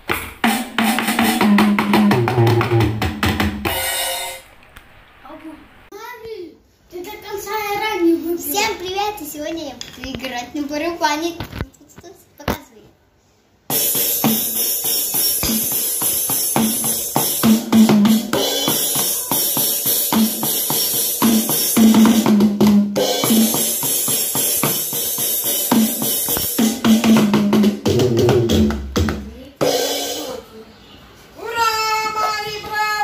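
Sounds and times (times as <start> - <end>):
electronic drum hits: 0.0 - 4.4, 13.7 - 30.4.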